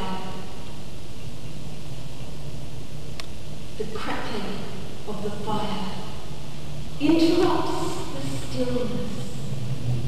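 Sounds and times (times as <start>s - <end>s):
low background rumble: 0.0s - 10.0s
person speaking: 7.0s - 9.2s.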